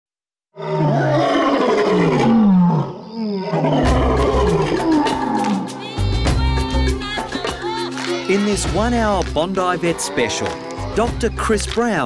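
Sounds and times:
lion roaring: 0.6s - 5.7s
music with percussive beat: 3.9s - 12.0s.

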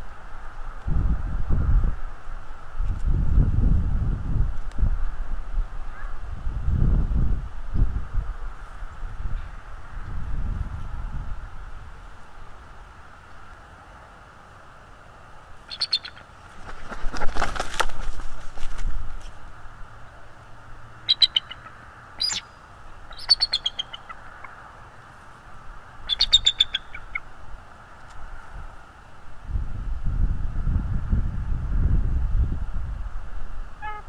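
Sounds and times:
wind buffeting a microphone: 0.8s - 12.1s, 29.4s - 34.0s
eagle high piping chirps: 15.7s - 16.3s, 21.1s - 24.5s, 26.1s - 27.3s.

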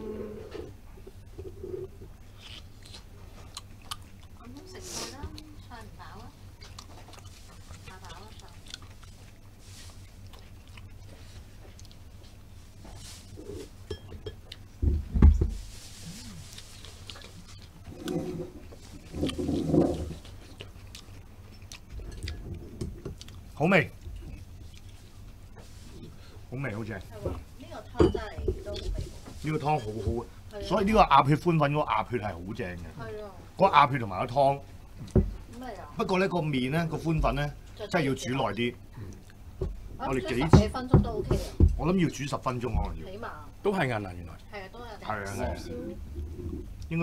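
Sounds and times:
low room hum: 0.0s - 47.0s
quiet chewing: 0.2s - 14.8s, 15.6s - 30.8s, 37.0s - 40.4s.

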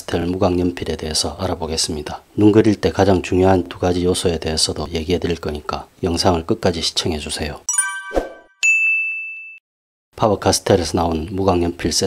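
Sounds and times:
bright chime: 7.7s - 9.6s
sharp ding: 7.7s - 9.6s.

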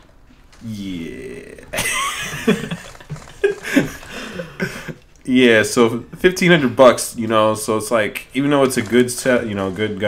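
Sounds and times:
men laughing: 1.2s - 5.1s.

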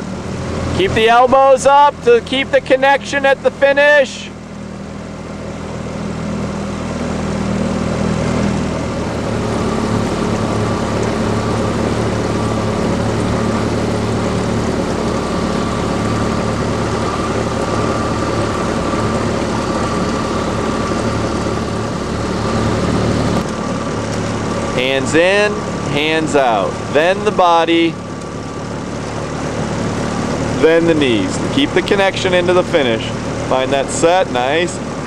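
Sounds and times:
outboard motor running: 0.0s - 35.0s.

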